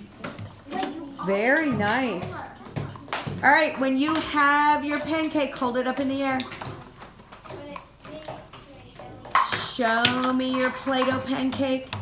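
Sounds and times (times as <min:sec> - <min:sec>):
young children chattering: 0:00.0 - 0:03.1.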